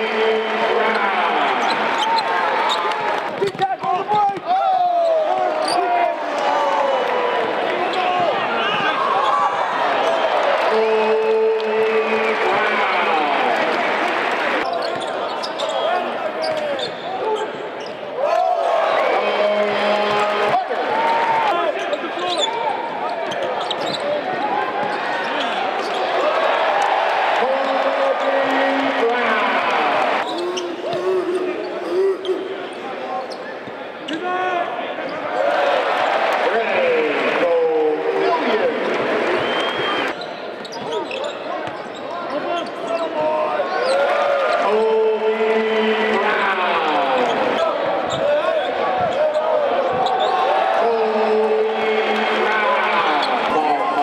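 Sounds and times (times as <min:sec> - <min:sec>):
players and crowd calling: 0:00.0 - 0:54.0.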